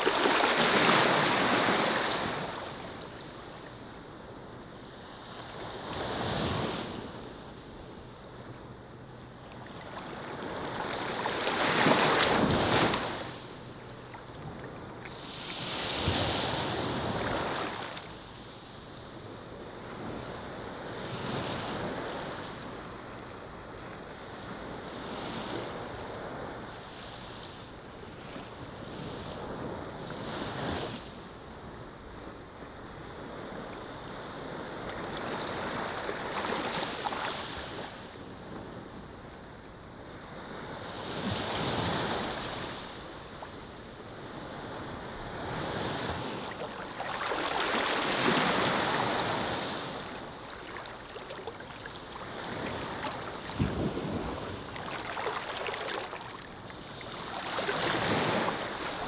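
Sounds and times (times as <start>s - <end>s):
small waves washing onto sand: 0.0s - 4.3s, 9.4s - 23.2s, 40.1s - 59.0s.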